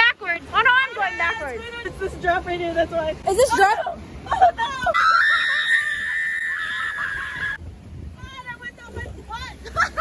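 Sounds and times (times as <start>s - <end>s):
woman screaming: 4.3s - 7.6s.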